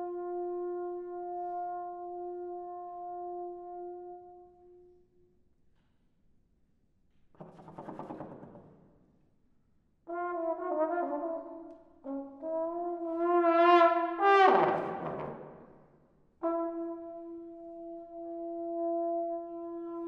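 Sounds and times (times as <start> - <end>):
solo trombone playing: 0.0 - 4.9, 10.1 - 15.4, 16.4 - 20.0.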